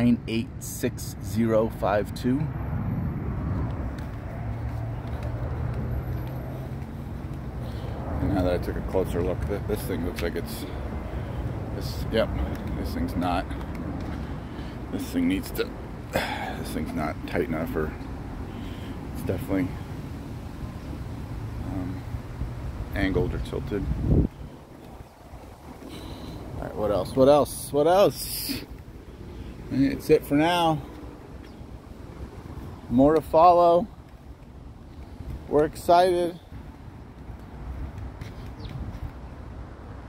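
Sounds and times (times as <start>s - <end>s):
road traffic rumble: 0.0s - 40.0s
wind buffeting microphone: 22.2s - 33.2s.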